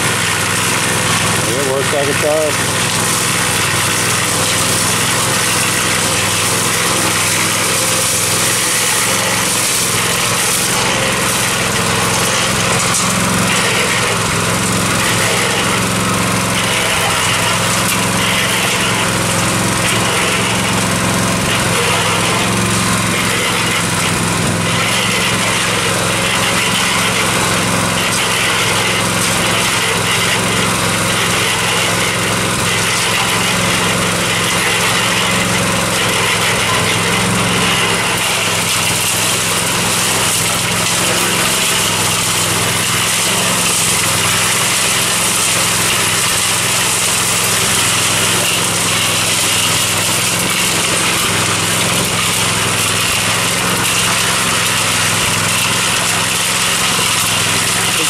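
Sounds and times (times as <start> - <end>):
small gasoline engine running: 0.0 - 58.0.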